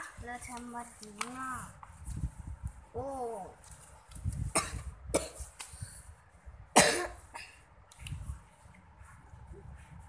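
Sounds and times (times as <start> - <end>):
person coughing: 6.8 - 7.6.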